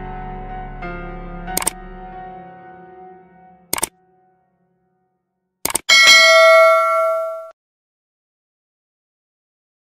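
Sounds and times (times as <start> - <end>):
bell ding: 5.9 - 7.5.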